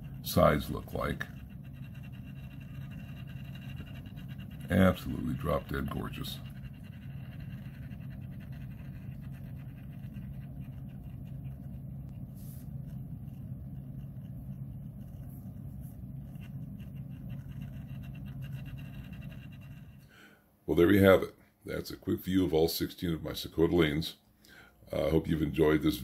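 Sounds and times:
motorized turntable humming: 0.0 - 20.1.

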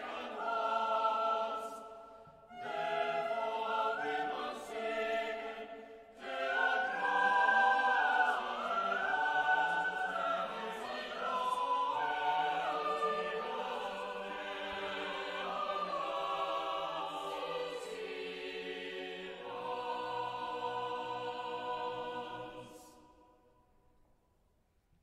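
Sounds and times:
choir singing slow chords: 0.0 - 24.0.

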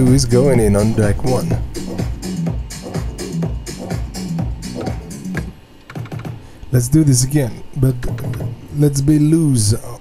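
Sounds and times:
house music with kick and hi-hats: 0.0 - 6.5, 7.9 - 8.7.

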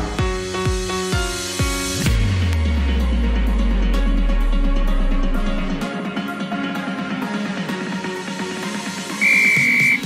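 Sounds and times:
electronic dance music: 8.8 - 10.0
interval timer beep: 9.2 - 10.0.

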